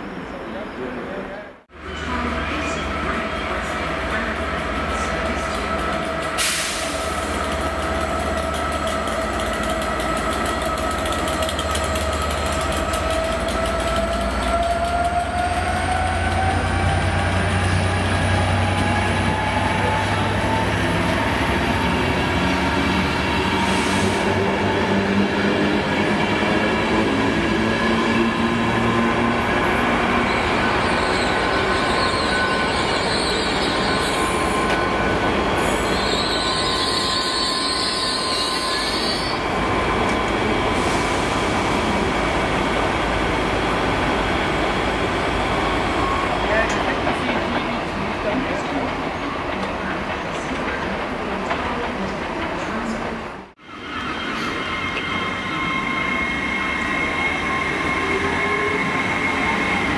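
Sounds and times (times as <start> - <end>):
diesel locomotive engine: 0.0 - 59.9
train coaches rumbling on rails: 0.0 - 59.9.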